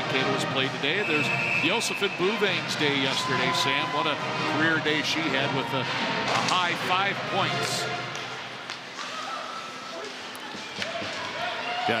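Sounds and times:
hockey sticks and puck clicking: 7.5s - 11.5s.

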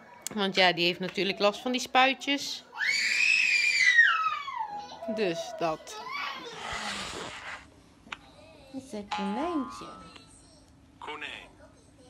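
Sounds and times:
baby crying: 2.7s - 7.3s.

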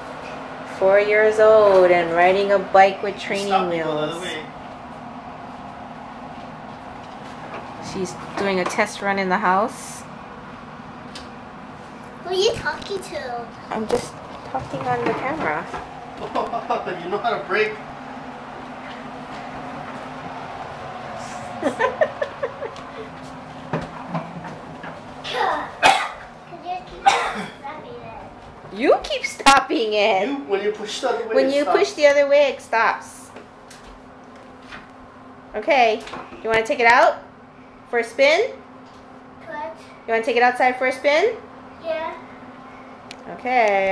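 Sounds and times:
bicycle rolling on hardwood floor: 0.0s - 27.0s, 27.6s - 34.9s
young child voice sounds: 25.3s - 25.8s
adult voice sounds: 25.3s - 28.3s.

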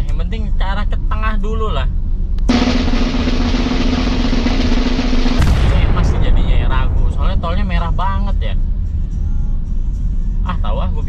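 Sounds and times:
snare drum roll: 2.5s - 7.5s.

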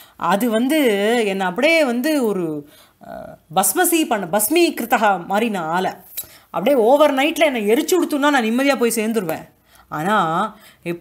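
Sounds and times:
woman lecturing: 0.2s - 11.0s.

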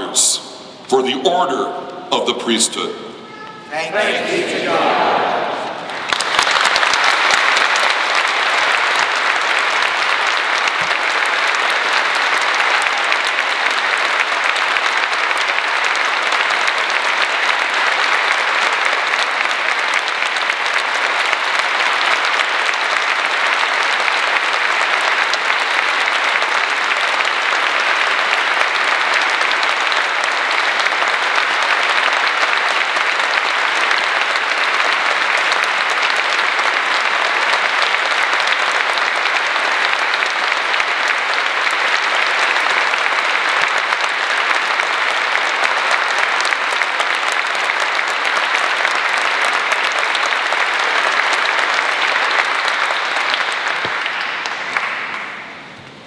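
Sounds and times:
congregation applauding: 0.0s - 0.6s, 1.6s - 56.0s.

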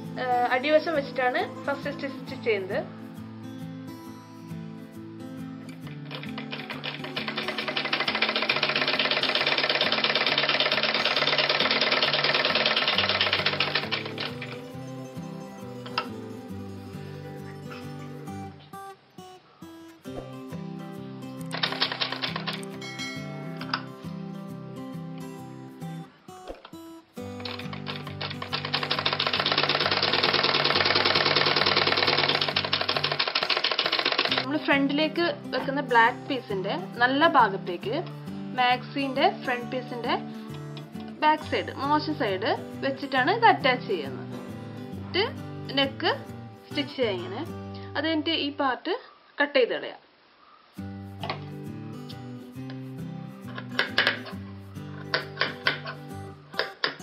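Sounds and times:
background music: 0.0s - 48.6s, 50.8s - 57.0s
sewing machine running: 6.0s - 14.6s, 21.5s - 22.7s, 27.4s - 34.5s.

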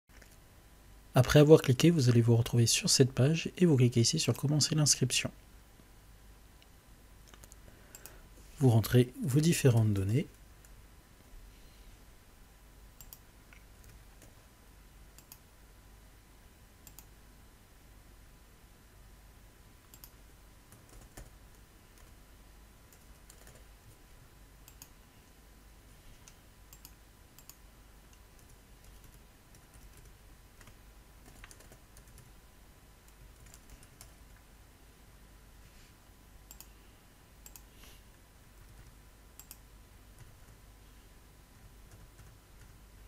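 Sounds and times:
faint steady hum: 0.1s - 43.0s
computer keyboard typing: 13.0s - 14.4s, 15.2s - 15.4s, 16.8s - 17.1s, 19.9s - 22.2s, 22.9s - 23.7s, 24.6s - 25.0s, 26.2s - 32.3s, 33.1s - 34.4s, 36.5s - 36.7s, 37.4s - 37.7s, 38.6s - 39.6s, 41.6s - 42.8s.

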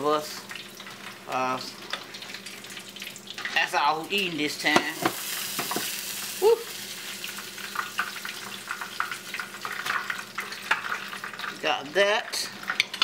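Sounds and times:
fish sizzling in hot oil: 0.0s - 13.0s.

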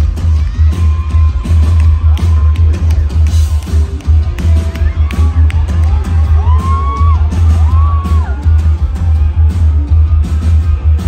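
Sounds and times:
live rock band: 0.0s - 11.0s.

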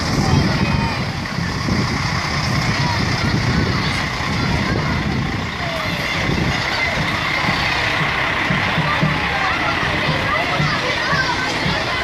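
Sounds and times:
crowd and children's voices: 0.0s - 12.0s
diesel lorry engine rumbling: 0.0s - 12.0s.

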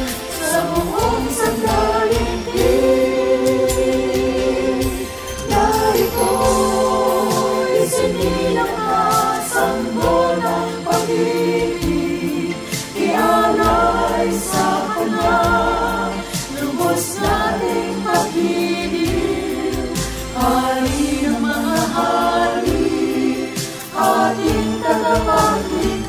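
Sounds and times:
mixed choir singing a hymn: 0.0s - 26.0s.

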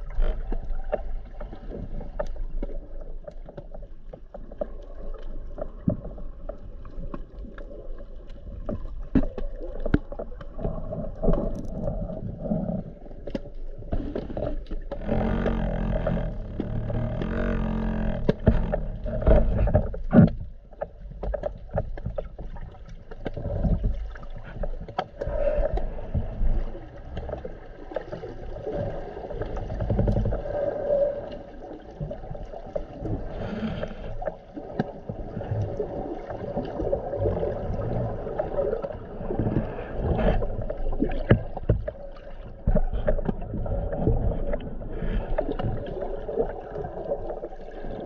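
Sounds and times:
muffled water rushing and sloshing: 0.0s - 48.0s.

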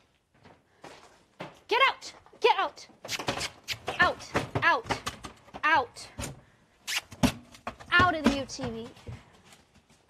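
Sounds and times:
scuffle of hooves: 0.0s - 2.4s.

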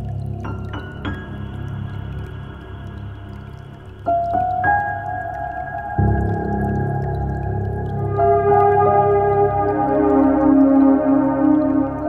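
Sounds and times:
ambient meditation music: 0.0s - 12.0s.

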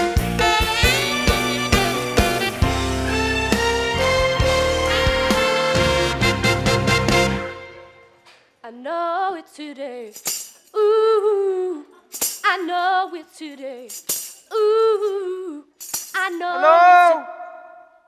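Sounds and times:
woman singing unaccompanied: 8.6s - 16.8s.

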